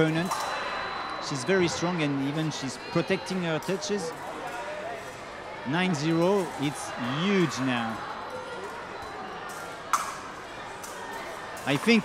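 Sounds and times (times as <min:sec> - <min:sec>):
murmur of large hall: 0:00.0 - 0:12.0
fencing blades clicking: 0:09.5 - 0:12.0.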